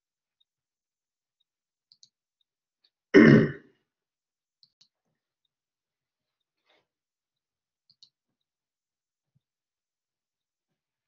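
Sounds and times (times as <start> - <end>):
person clearing throat: 3.2 - 3.7.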